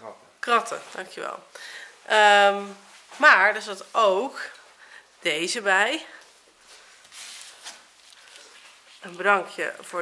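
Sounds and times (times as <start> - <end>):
faint rustling: 2.0 - 5.1, 6.0 - 10.0.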